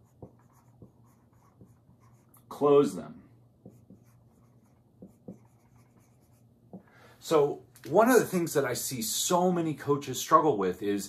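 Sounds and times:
marker writing on whiteboard: 0.0 - 2.4, 3.6 - 6.9.

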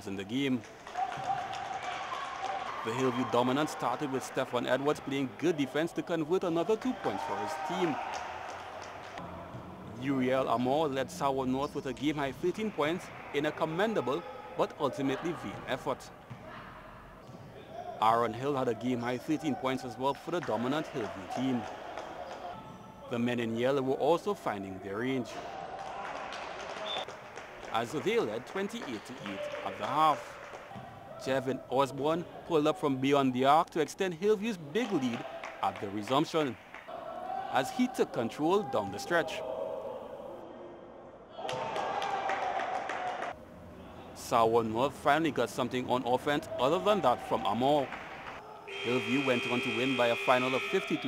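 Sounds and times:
basketball game noise: 0.0 - 51.0
ball bouncing on gym floor: 16.3 - 16.6
quick clapping: 41.5 - 43.4.

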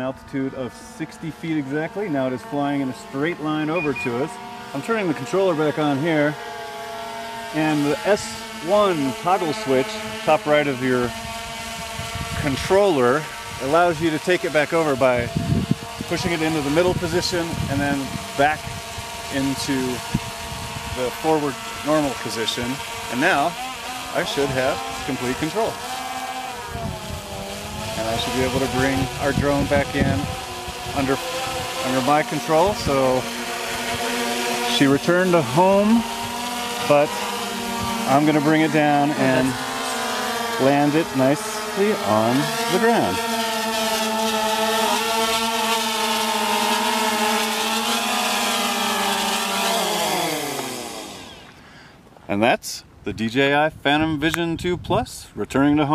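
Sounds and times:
drone propellers humming overhead: 0.0 - 51.7.

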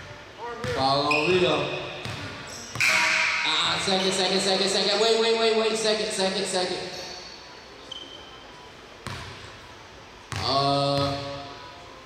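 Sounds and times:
basketball bounce on wooden floor: 2.0 - 3.0, 9.0 - 9.4.

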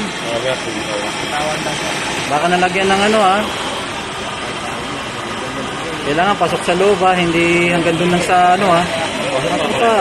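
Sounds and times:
gas torch hissing: 0.0 - 10.0.

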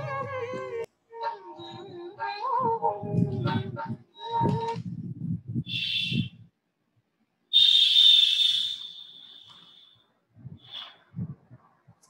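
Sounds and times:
low rumbling: 1.7 - 6.5
high whistle-like tone: 5.6 - 6.4, 7.5 - 10.0, 10.6 - 11.0
short high burst: 7.6 - 10.0.

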